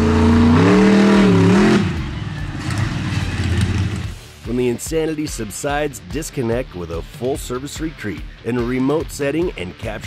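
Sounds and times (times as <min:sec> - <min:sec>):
monster truck engine revving: 0:00.0 - 0:04.2.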